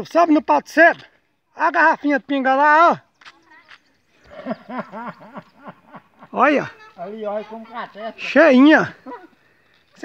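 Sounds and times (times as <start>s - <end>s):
person chuckling: 4.2s - 6.3s.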